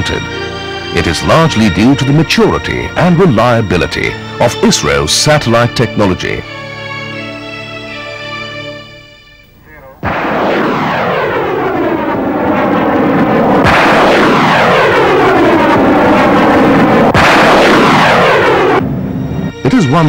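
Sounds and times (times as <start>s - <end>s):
rocket motor roaring: 10.0s - 19.2s.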